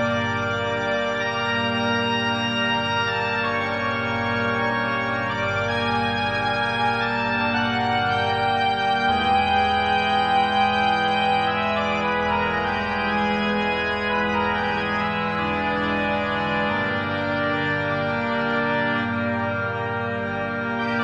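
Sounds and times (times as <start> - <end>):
organ playing held chords: 0.0 - 21.0.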